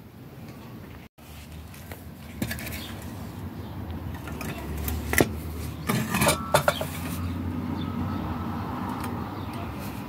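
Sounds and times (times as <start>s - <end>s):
metal faucet parts clinking: 5.9s - 7.2s.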